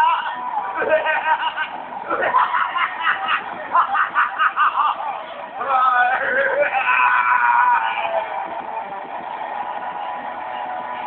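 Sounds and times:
voice crying out: 5.9s - 8.3s.

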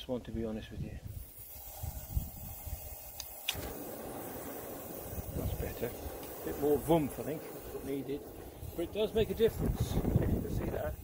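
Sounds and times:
gas burner flame rushing: 1.1s - 11.0s
gas igniting with a pop: 1.1s - 11.0s.

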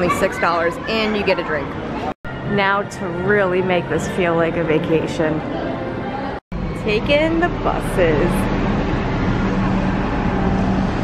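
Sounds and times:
vehicle engines humming: 6.6s - 11.0s.

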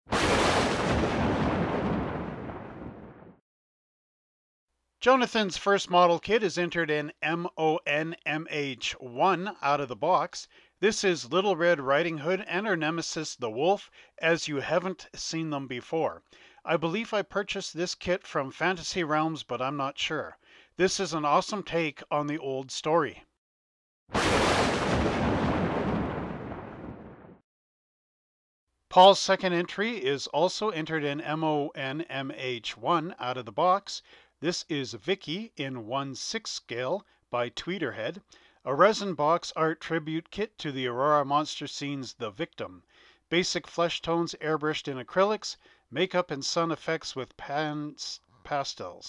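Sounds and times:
rumbling explosion boom: 0.1s - 3.4s, 24.2s - 27.4s.

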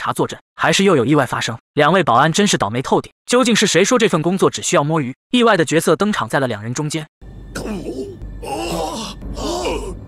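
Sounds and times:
men groaning in shock: 7.6s - 10.0s.

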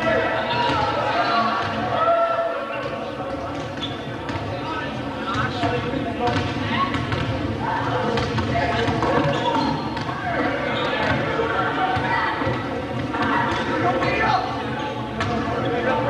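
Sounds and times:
chatter of many voices: 0.0s - 16.0s
basketballs bouncing on wooden floor: 5.3s - 7.4s.

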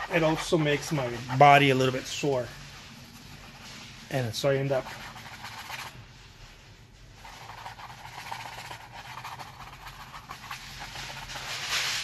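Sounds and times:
brush scrubbing on canvas: 0.0s - 12.0s.

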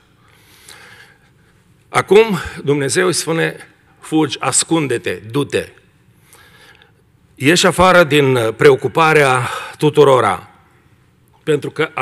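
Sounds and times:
man speaking: 1.9s - 5.8s, 7.4s - 10.6s, 11.4s - 12.0s.

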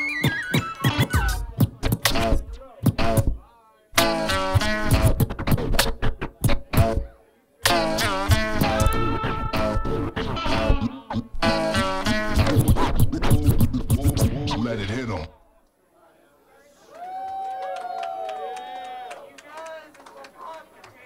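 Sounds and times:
beat: 0.0s - 3.4s, 4.0s - 14.9s
turntable scratching: 0.0s - 3.4s, 4.0s - 15.3s.

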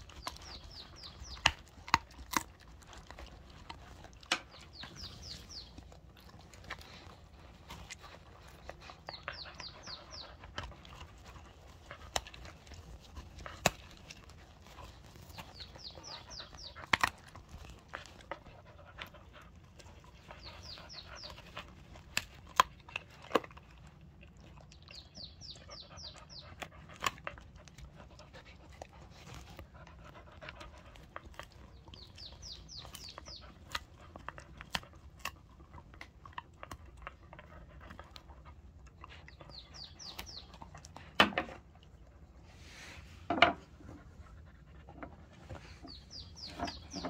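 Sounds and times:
teeth clicking on treat: 0.0s - 42.0s
dog chewing a treat: 0.0s - 42.6s.

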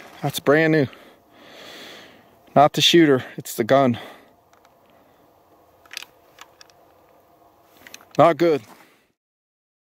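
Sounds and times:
rifle action metallic clicks: 5.8s - 6.9s.

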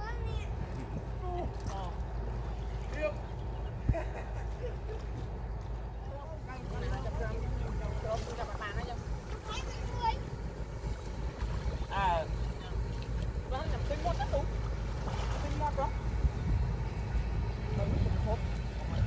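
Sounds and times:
people talking and calling out: 0.0s - 19.0s
wind on microphone: 15.0s - 19.0s.

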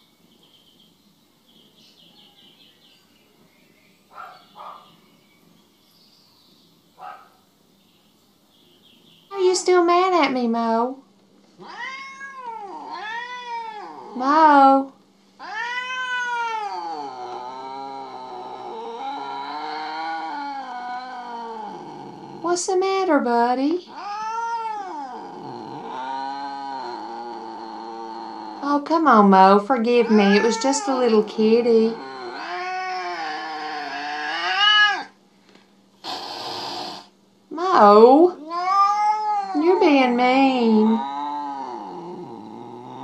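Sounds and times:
cat yowling: 11.6s - 14.2s, 15.4s - 22.0s, 23.9s - 28.7s, 29.9s - 35.2s, 38.3s - 43.0s
breathy hiss-like noise: 25.0s - 37.5s.

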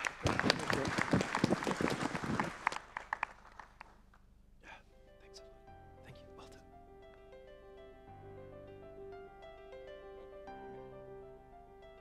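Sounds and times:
audience applauding: 0.0s - 4.0s.

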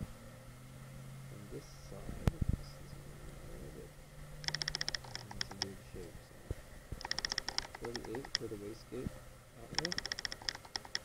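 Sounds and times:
rapid clicking: 4.4s - 5.8s, 7.0s - 8.5s, 9.7s - 11.0s.

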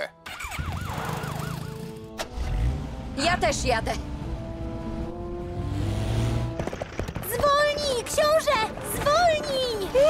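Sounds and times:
emergency vehicle siren: 0.3s - 2.2s.

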